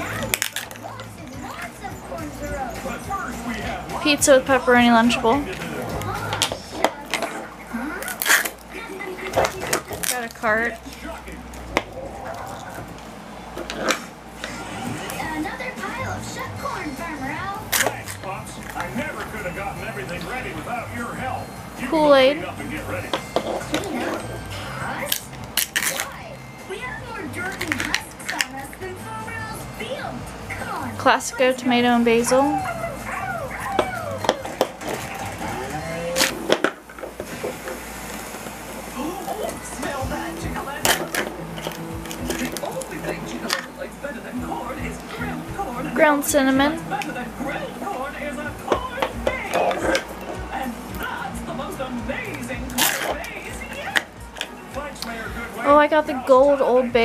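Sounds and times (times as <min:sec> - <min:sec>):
television dialogue: 0:00.0 - 0:57.0.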